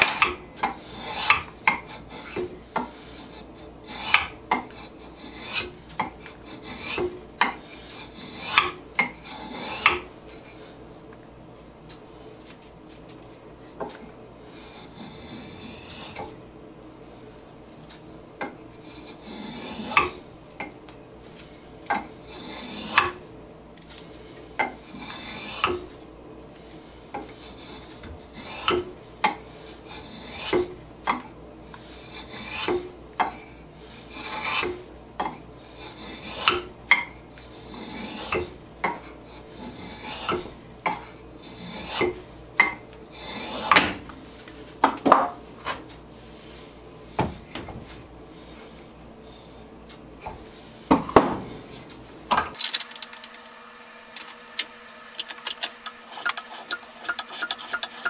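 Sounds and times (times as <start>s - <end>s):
spokeshave scraping wood: 0.8s - 7.2s, 22.2s - 23.2s, 24.8s - 25.9s, 37.4s - 40.5s, 41.4s - 42.2s, 43.1s - 43.9s, 52.9s - 58.0s.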